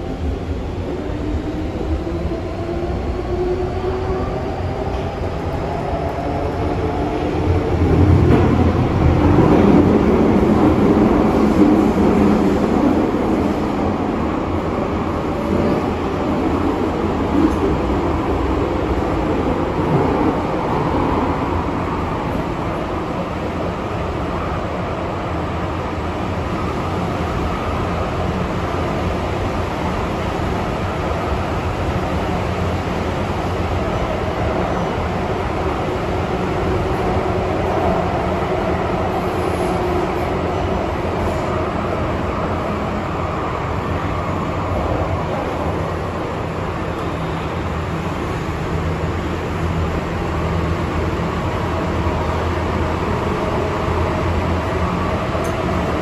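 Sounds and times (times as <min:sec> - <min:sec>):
wheels rumbling on rail: 0:00.0 - 0:56.0.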